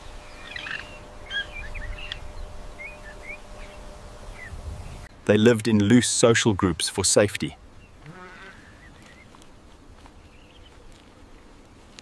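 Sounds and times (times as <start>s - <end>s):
small birds chirping: 0.0s - 5.1s, 7.6s - 11.5s
low outdoor rumble: 0.0s - 12.0s.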